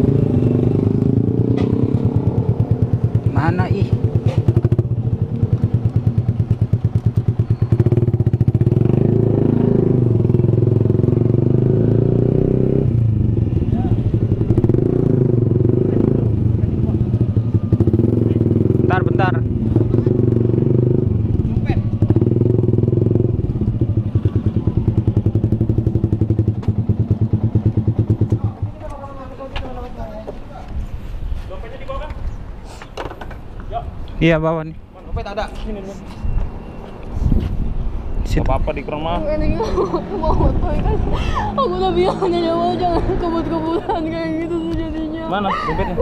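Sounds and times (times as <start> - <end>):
motorcycle engine: 0.0 - 29.5.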